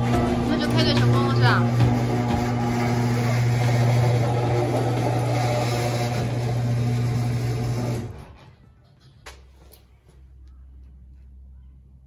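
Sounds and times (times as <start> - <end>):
garage door opener motor hum: 0.0 - 8.7
garage door rollers rumbling: 0.0 - 8.8.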